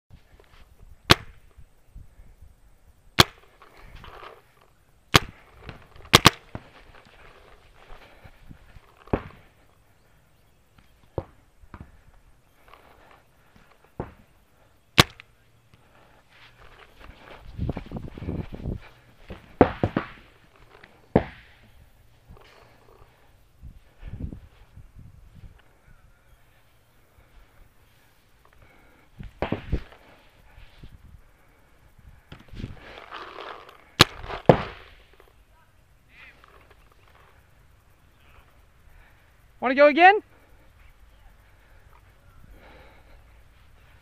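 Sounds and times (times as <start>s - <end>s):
rustling noise: 0.1s - 2.4s, 3.4s - 9.8s, 15.8s - 25.7s, 26.6s - 35.5s
paintball marker firing pops: 1.1s - 1.5s, 3.2s - 3.7s, 5.1s - 7.0s, 15.0s - 15.3s, 34.0s - 35.0s.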